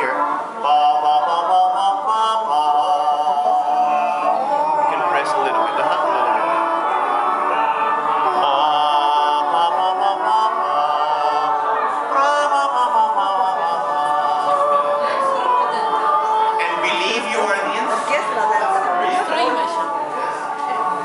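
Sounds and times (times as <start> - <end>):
men singing a cappella: 0.0 - 18.0.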